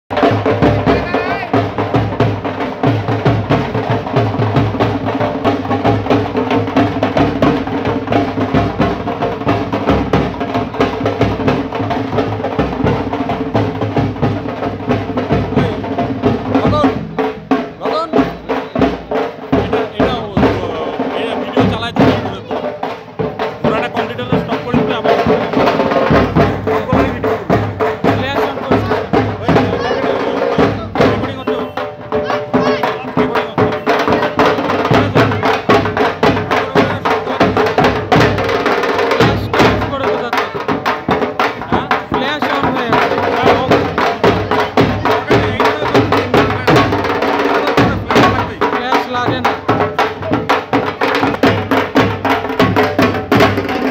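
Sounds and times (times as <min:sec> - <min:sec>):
drums and percussion beating: 0:00.1 - 0:53.9
crowd voices: 0:16.5 - 0:53.9.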